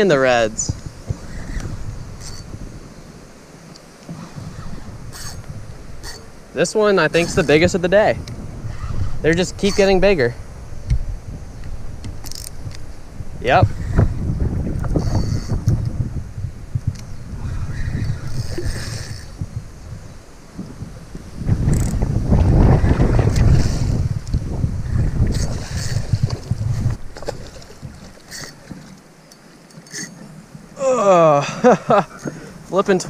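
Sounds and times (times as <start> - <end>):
wind buffeting microphone: 0.0 - 28.9.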